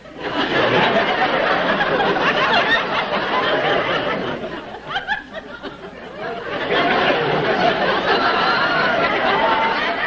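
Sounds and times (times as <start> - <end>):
audience laughing and chattering: 0.0 - 10.0.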